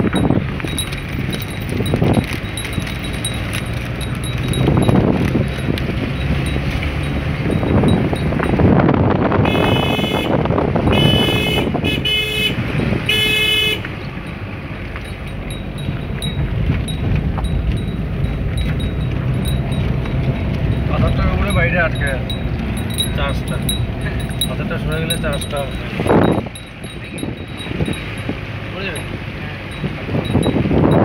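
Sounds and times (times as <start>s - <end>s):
car engine and road noise: 0.0s - 31.0s
car horn honking: 9.3s - 14.2s.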